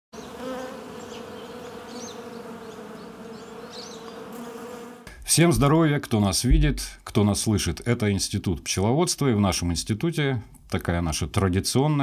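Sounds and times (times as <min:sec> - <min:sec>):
bees buzzing: 0:00.2 - 0:05.1.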